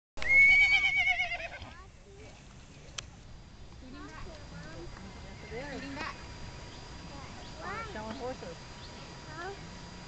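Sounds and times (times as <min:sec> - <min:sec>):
horse whinnying: 0:00.2 - 0:01.7.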